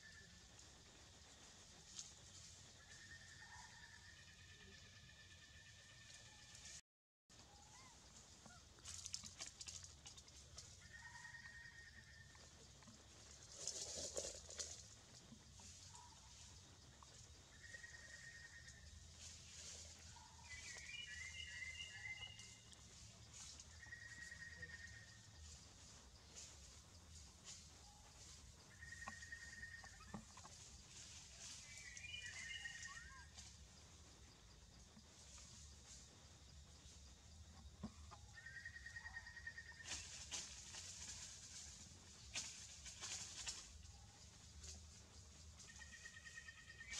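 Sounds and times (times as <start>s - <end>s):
thin high whistled calls: 31.6s - 33.2s.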